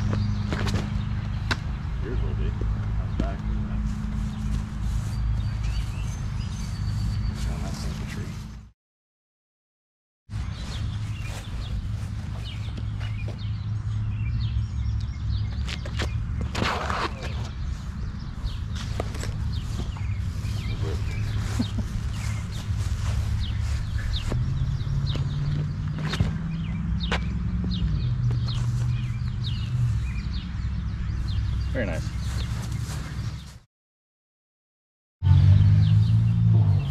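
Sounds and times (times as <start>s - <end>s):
birds chirping: 0.0s - 8.7s, 10.3s - 33.6s, 35.2s - 36.9s.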